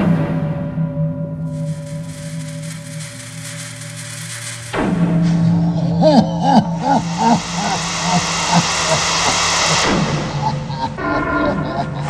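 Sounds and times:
loud white noise hiss: 0:01.5 - 0:12.0.

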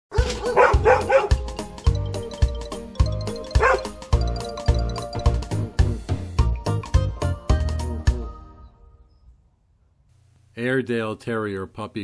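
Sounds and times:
dog barking high-pitched: 0:00.1 - 0:01.4, 0:03.6 - 0:04.0
upbeat music with drum beat: 0:00.4 - 0:08.4.

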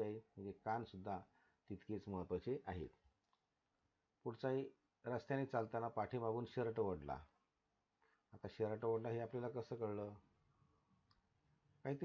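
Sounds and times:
man talking: 0:00.0 - 0:03.0, 0:04.3 - 0:07.3, 0:08.4 - 0:10.2.

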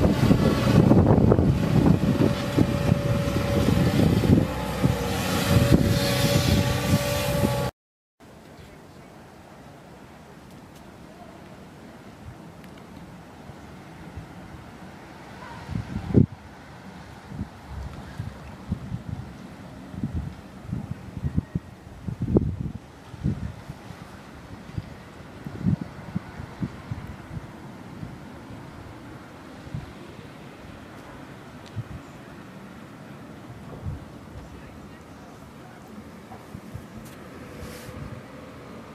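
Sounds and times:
wind buffeting microphone: 0:00.0 - 0:07.7, 0:15.5 - 0:30.0, 0:31.7 - 0:32.1, 0:33.5 - 0:34.9, 0:36.4 - 0:38.9.

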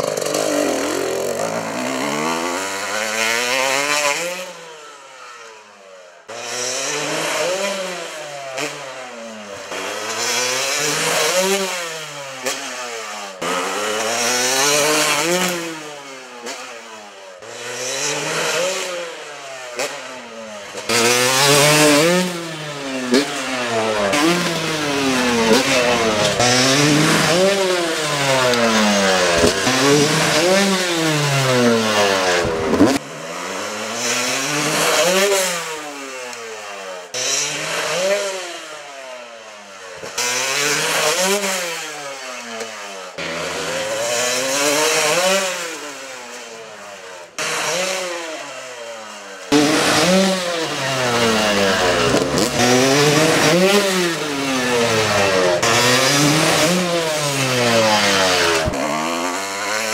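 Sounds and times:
dirt bike engine revving: 0:00.0 - 0:05.5, 0:06.3 - 0:59.9.

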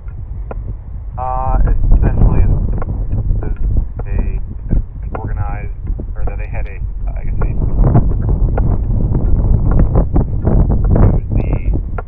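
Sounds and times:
wind buffeting microphone: 0:00.0 - 0:12.0
people's voices: 0:01.2 - 0:02.5, 0:03.4 - 0:07.8, 0:11.0 - 0:11.8.

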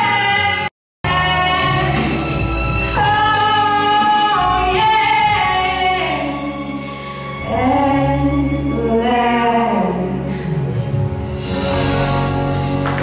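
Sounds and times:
woman singing a slow ballad: 0:00.0 - 0:02.0, 0:03.0 - 0:10.7
instrumental accompaniment: 0:01.1 - 0:09.2.

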